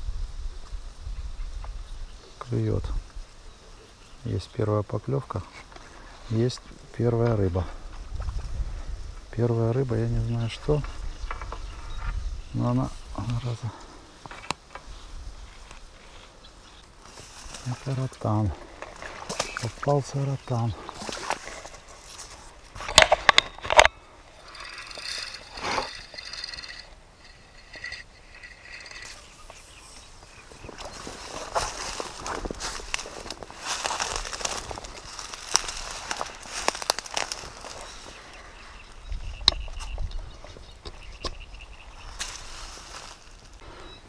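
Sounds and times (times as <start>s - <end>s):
dry reeds rustling and crackling: 0.5s - 43.6s
fishing rod handling noise: 18.8s - 19.8s, 20.9s - 38.2s.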